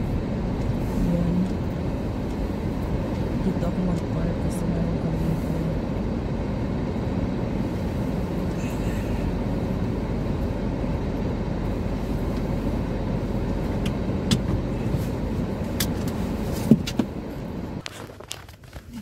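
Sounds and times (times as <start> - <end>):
car engine and tyre rumble: 0.0 - 19.0.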